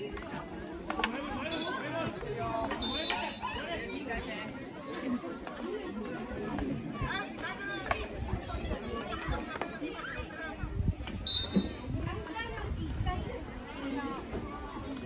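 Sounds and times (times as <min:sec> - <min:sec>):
people calling out and chattering: 0:00.0 - 0:15.0.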